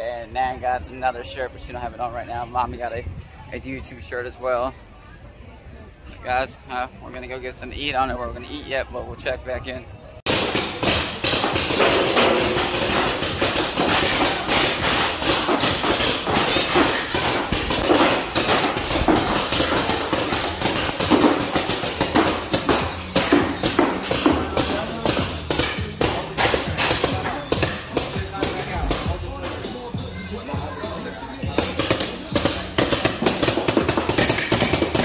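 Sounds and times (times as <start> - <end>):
music: 10.0 - 35.0
voices: 22.5 - 33.3.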